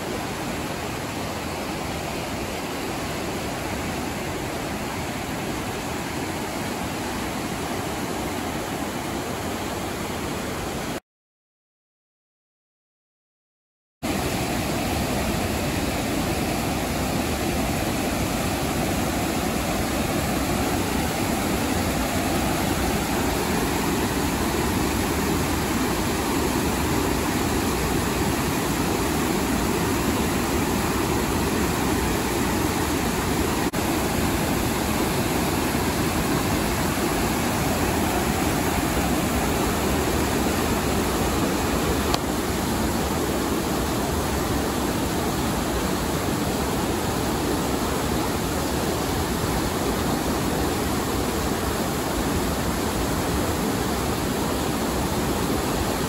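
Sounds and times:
water rushing over rocks: 0:14.1 - 0:56.0.

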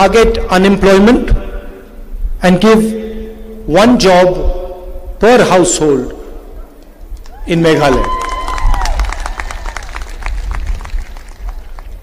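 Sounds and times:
pa echo of speech: 0:00.0 - 0:06.8
crowd clapping: 0:07.2 - 0:12.0.

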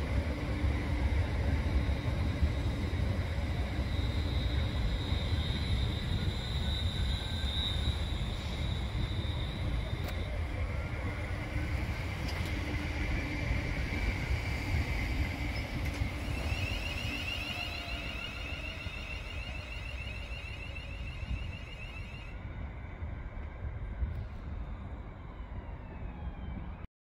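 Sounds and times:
high electric whine: 0:00.0 - 0:22.4
train low rumble: 0:00.0 - 0:26.9.

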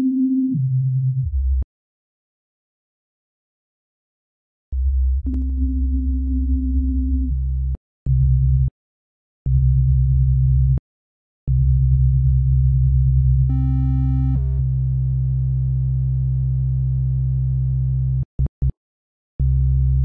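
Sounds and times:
deep synth bass notes: 0:13.4 - 0:15.3.

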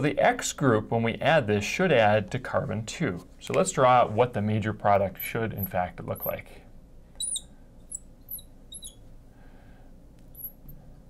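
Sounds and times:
marker squeaking on glass: 0:05.1 - 0:06.4, 0:07.2 - 0:09.1, 0:10.3 - 0:10.8.

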